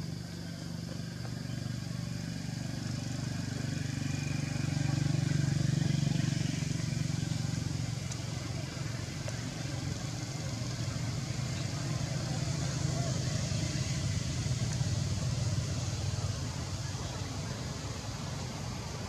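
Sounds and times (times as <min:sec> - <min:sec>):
motor engine running: 0:00.0 - 0:19.0.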